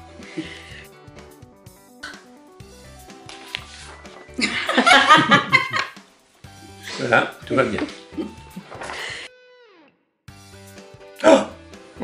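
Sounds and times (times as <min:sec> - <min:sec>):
soft background music: 0:00.0 - 0:09.3, 0:10.3 - 0:12.0
loud laughter: 0:04.4 - 0:05.9.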